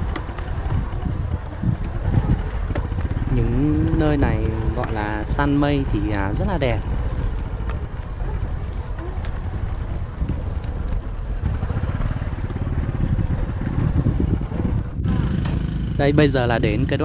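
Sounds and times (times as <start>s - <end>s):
motorbike engine running: 0.0s - 17.0s
wind rumbling on microphone: 0.0s - 17.0s.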